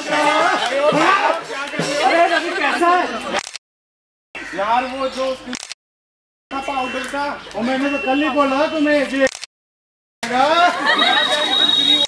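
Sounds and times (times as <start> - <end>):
people talking: 6.5 - 9.3, 10.2 - 12.0.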